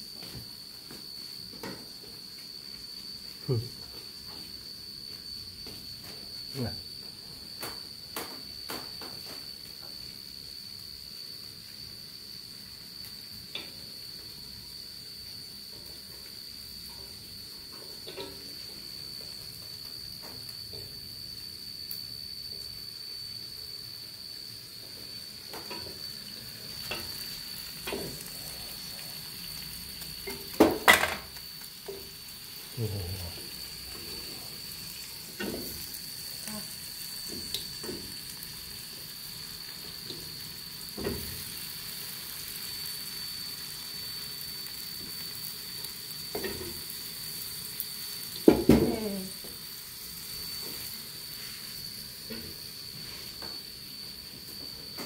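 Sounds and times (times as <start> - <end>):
onion sizzling in oil: 0.0 - 55.0.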